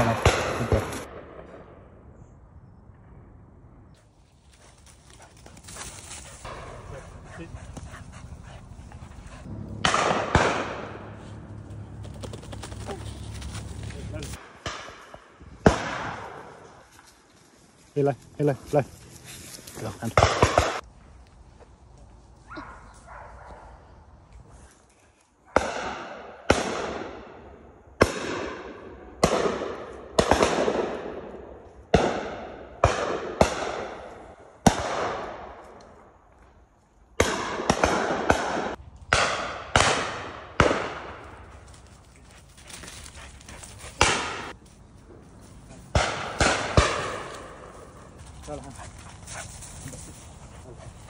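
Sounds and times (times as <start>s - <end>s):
shotgun shots echoing: 0.0s - 1.9s, 9.5s - 11.6s, 14.4s - 16.8s, 20.0s - 20.8s, 28.0s - 35.6s, 37.2s - 41.2s, 45.9s - 47.9s.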